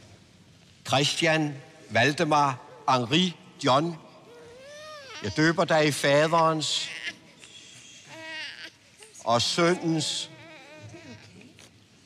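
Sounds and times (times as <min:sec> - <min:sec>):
infant whimpering: 0:04.3 - 0:05.4, 0:06.8 - 0:11.7.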